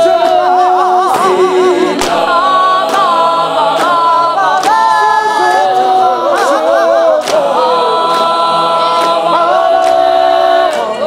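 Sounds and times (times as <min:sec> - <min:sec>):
mixed choir singing a cappella: 0:00.0 - 0:11.0.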